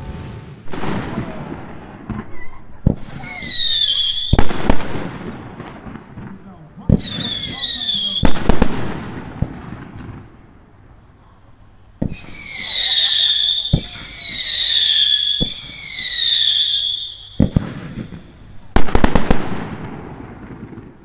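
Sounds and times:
loud firework bangs: 0:00.0 - 0:10.5, 0:11.9 - 0:21.0
falling firework whistle: 0:02.2 - 0:04.6, 0:12.0 - 0:19.1.

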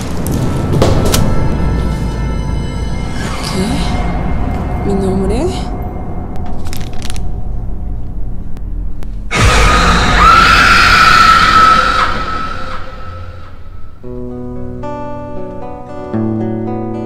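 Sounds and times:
dark horror music: 0:00.0 - 0:16.0
high held scream: 0:09.3 - 0:13.7
harsh noise: 0:09.3 - 0:14.0.

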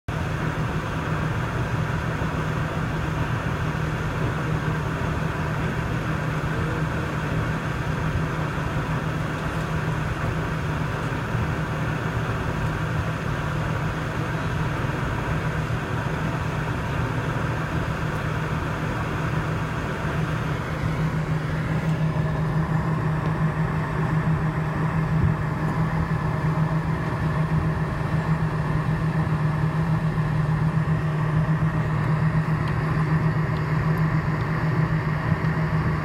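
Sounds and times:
airplane cabin hum: 0:00.1 - 0:36.0.

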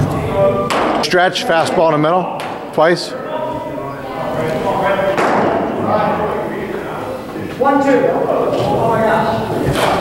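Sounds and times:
indistinct voices echoing: 0:00.0 - 0:10.0.

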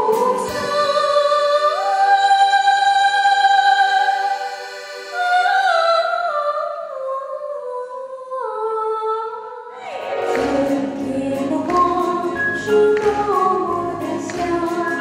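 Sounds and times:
woman singing: 0:00.0 - 0:04.5, 0:05.1 - 0:15.0
band with piano bass and drums: 0:10.1 - 0:15.0.

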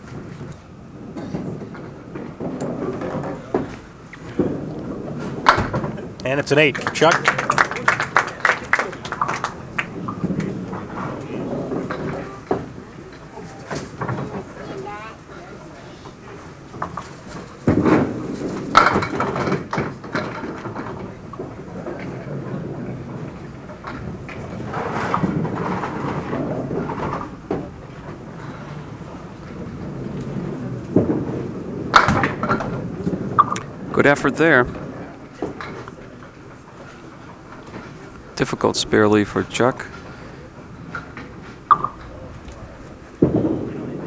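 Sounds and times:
voices murmuring: 0:00.0 - 0:44.0
bowling balls and pins clattering: 0:00.1 - 0:14.8, 0:16.2 - 0:38.3, 0:39.2 - 0:44.0.

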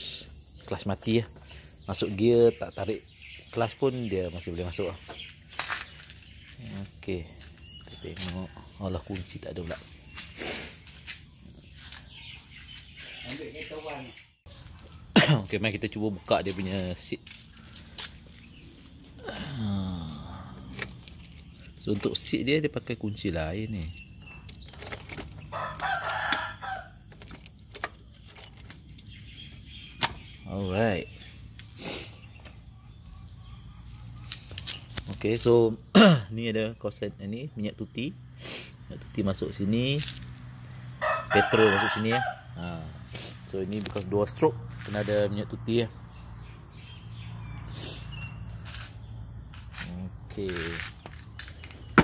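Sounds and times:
bird chirps: 0:00.0 - 0:35.6, 0:43.1 - 0:52.0
keys jangling and clicking: 0:15.7 - 0:18.5, 0:20.5 - 0:22.6, 0:23.7 - 0:29.6
rooster crowing: 0:25.5 - 0:27.0, 0:41.0 - 0:42.5.

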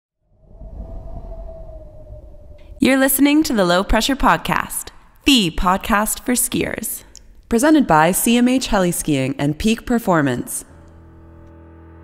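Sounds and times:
low rumble: 0:00.2 - 0:03.3.

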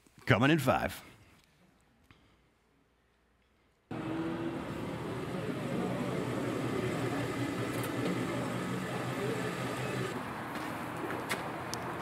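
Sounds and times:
car engine idling: 0:03.9 - 0:10.2.

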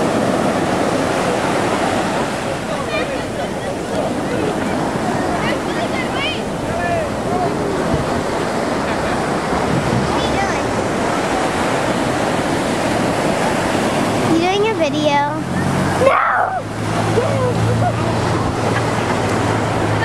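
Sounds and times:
ocean surf breaking on sand: 0:00.0 - 0:20.0
child's voice: 0:10.1 - 0:10.7, 0:14.3 - 0:15.4
faint voices calling out: 0:14.6 - 0:19.2.

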